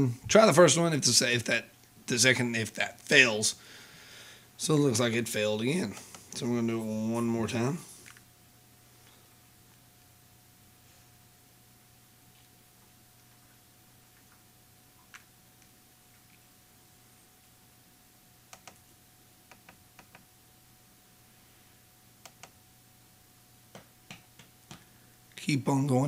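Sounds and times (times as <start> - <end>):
faint electrical whine and hum: 0.0 - 26.0.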